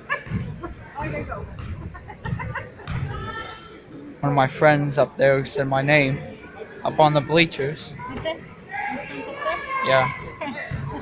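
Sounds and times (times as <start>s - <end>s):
shoes squeaking on gym floor: 0.0s - 3.8s
murmur of voices: 0.0s - 11.0s.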